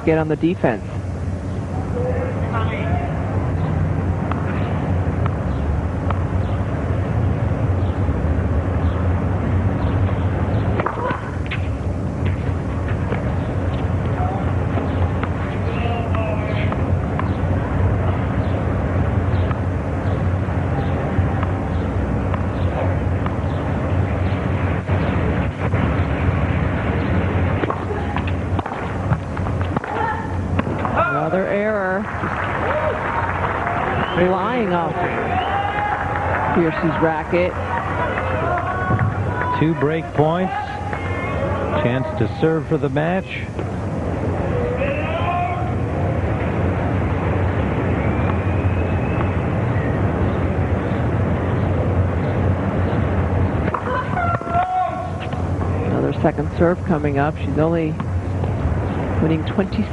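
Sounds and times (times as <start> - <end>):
low constant hum: 0.0 - 59.9
stadium crowd murmur: 29.7 - 58.0
faint voices: 29.8 - 46.2.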